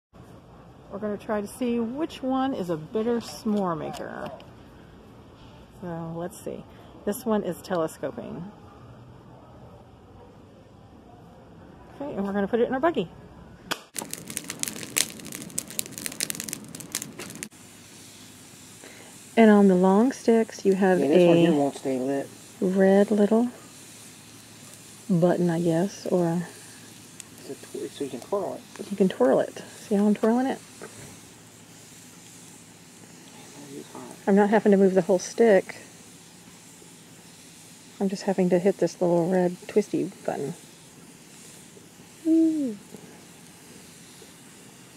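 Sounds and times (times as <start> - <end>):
campfire crackling and popping: 13.7 - 33.6, 34.2 - 44.8
steady hiss: 13.7 - 44.9.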